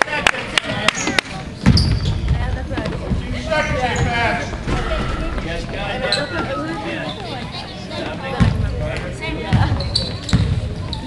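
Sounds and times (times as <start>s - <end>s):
spectators' voices: 0.0s - 11.0s
heavy thud: 4.5s - 5.9s.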